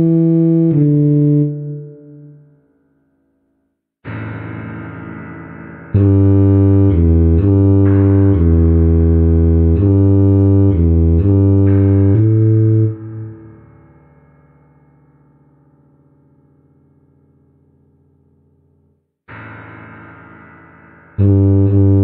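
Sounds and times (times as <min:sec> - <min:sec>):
tuba playing low notes: 0:00.0 - 0:02.4, 0:05.9 - 0:13.8, 0:21.2 - 0:22.0.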